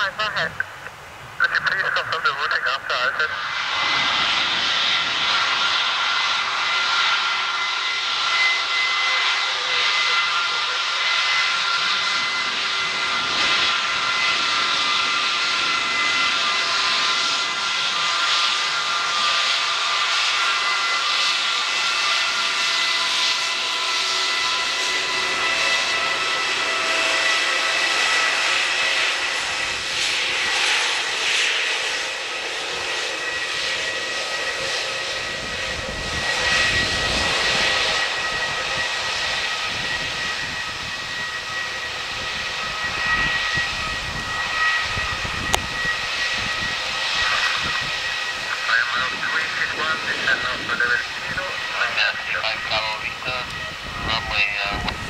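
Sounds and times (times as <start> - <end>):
jet engine whine: 0.0 - 55.0
deep jet exhaust rumble: 0.1 - 55.0.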